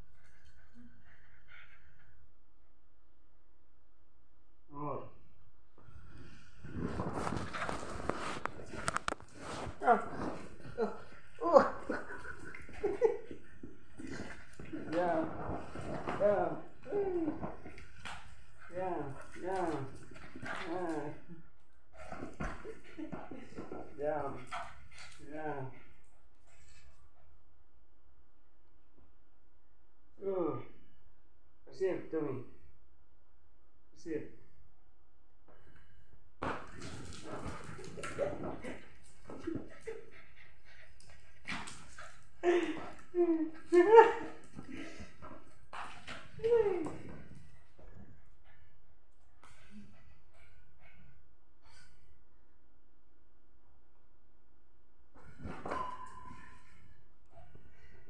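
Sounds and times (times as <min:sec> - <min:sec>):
rustling and scuffling: 0:06.6 - 0:20.8, 0:36.4 - 0:48.3
small dog whining and yelping: 0:55.5 - 0:56.6.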